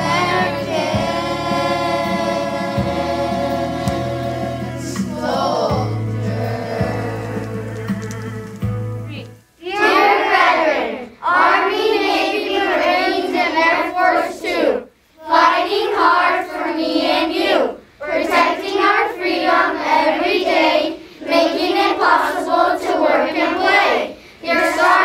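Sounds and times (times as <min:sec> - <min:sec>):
young children singing unaccompanied: 0:00.0 - 0:08.6, 0:09.6 - 0:25.0.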